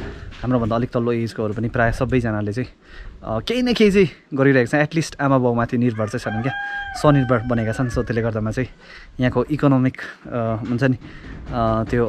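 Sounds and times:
man talking: 0.0 - 12.0
rooster crowing: 5.8 - 8.4.

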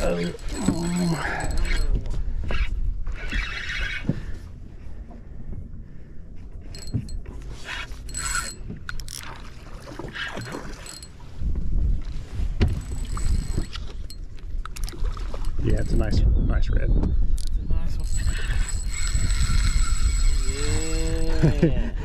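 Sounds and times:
fishing reel clicks and rattles: 0.0 - 2.0, 6.8 - 7.1, 7.9 - 9.4, 10.3 - 11.1, 12.8 - 16.1, 17.4 - 21.4
water lapping: 0.0 - 2.4, 6.8 - 16.0
wind buffeting microphone: 10.3 - 22.0.

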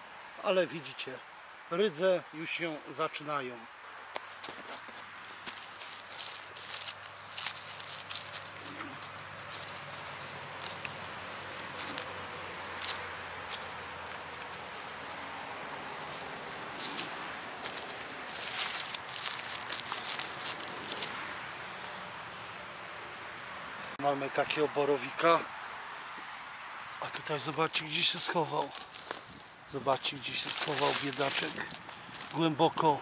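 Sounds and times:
leaf litter rustling and crackling: 4.3 - 21.4, 26.9 - 33.0.

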